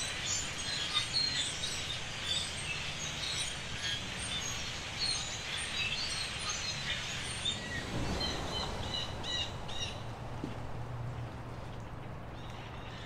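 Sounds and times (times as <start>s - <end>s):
flock of birds chirping: 0.0s - 10.6s.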